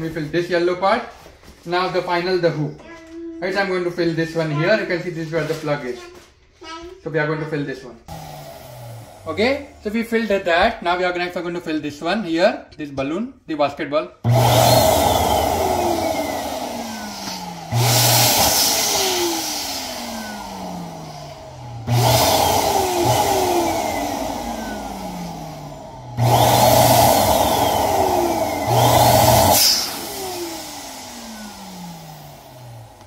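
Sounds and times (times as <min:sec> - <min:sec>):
electric balloon pump: 0:08.1 - 0:10.6, 0:14.2 - 0:33.0.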